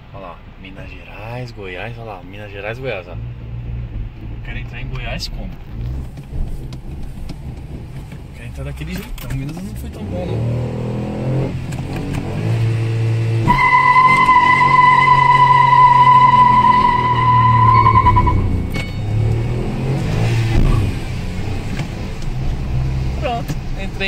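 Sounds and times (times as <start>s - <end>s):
car engine and road noise: 0.0s - 24.0s
steady high-pitched tone: 13.5s - 19.0s.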